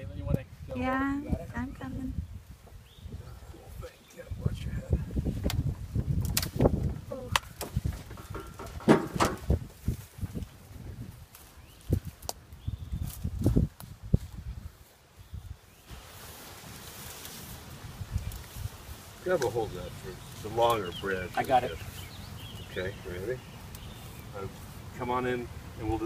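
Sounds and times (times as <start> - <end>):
leaves rustling: 0.0 - 26.0
knocks clicks and thumps: 5.4 - 9.6
steady hiss: 15.8 - 26.0.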